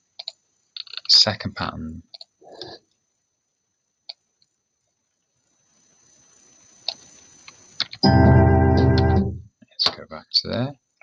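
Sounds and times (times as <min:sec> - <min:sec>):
computer mouse clicks: 0:00.2 - 0:01.0, 0:02.1 - 0:02.7
sustained synthesizer chord tones: 0:08.0 - 0:09.5.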